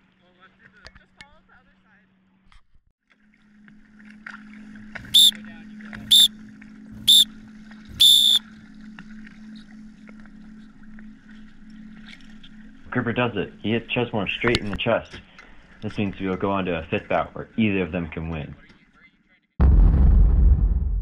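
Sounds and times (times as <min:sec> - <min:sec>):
referee's whistle blasts: 0:05.1 - 0:05.4, 0:06.0 - 0:06.3, 0:07.0 - 0:07.3, 0:08.0 - 0:08.4.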